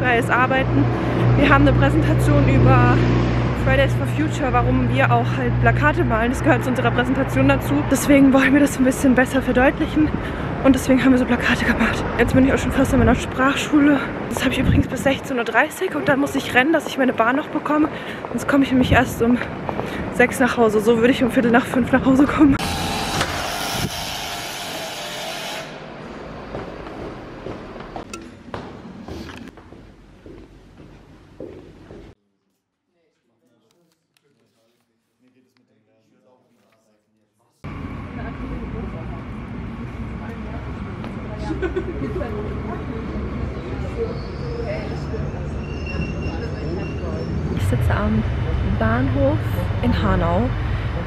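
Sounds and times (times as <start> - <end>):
street traffic rush: 0.0 - 32.2, 37.6 - 51.0
train rumble: 37.7 - 51.0
wheels squealing: 42.2 - 48.0.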